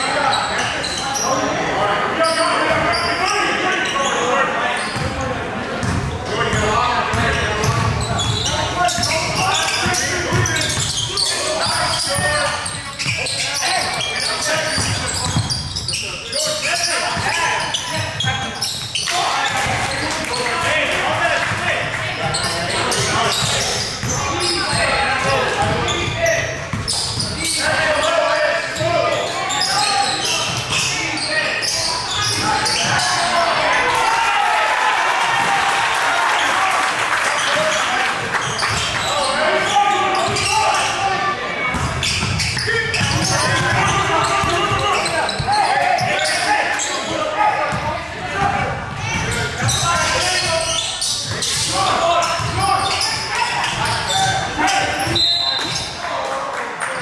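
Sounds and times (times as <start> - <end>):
basketball bouncing on wooden court: 5.8 - 11.0, 13.9 - 15.8, 22.2 - 27.4, 41.7 - 46.2, 52.3 - 53.1.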